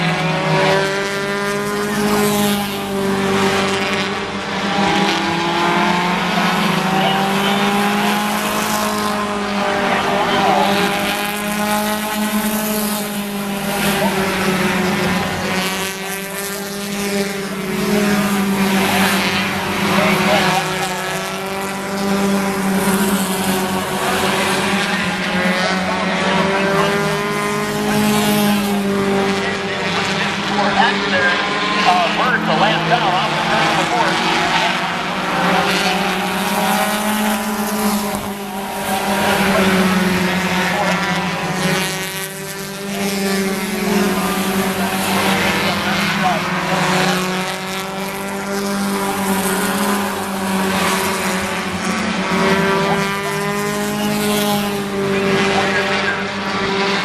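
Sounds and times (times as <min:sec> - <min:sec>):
racing car engines: 0:00.0 - 0:57.0.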